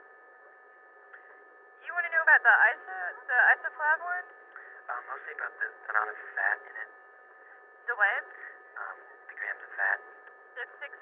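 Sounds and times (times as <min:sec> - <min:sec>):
faint telephone line tones: 0:00.0 - 0:11.0
speech over telephone: 0:01.9 - 0:04.3, 0:04.9 - 0:07.0, 0:07.9 - 0:11.0.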